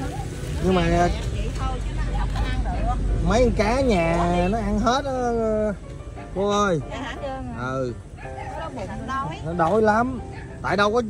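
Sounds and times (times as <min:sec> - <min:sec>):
steady low rumble: 0:00.0 - 0:10.1
voices talking: 0:00.0 - 0:11.0.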